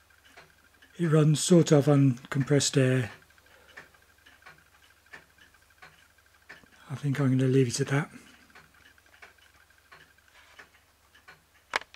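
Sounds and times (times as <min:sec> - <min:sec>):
toy steam engine ticking: 0:00.0 - 0:01.8, 0:02.5 - 0:11.8.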